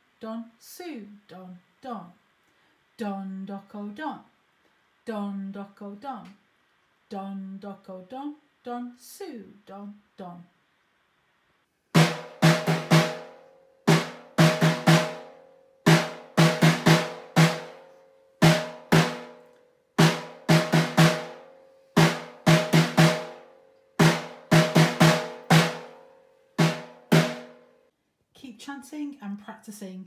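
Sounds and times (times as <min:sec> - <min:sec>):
snare drum struck with sticks: 0:12.0 - 0:17.8, 0:18.4 - 0:19.4, 0:20.0 - 0:26.0, 0:26.6 - 0:27.6.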